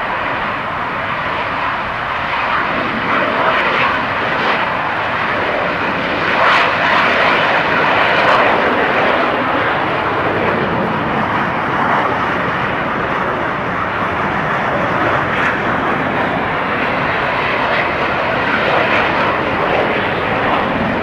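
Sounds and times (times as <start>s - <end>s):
jet engine roar: 0.0s - 21.0s.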